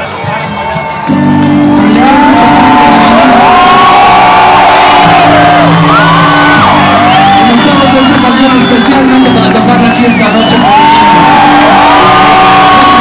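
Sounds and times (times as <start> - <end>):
rock band playing live: 0.0 - 13.0
people shouting and whooping: 0.3 - 13.0.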